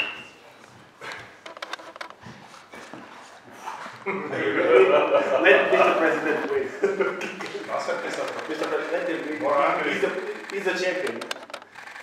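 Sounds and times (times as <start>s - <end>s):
low voices: 4.0s - 11.4s
quick run of small clicks: 7.4s - 12.0s.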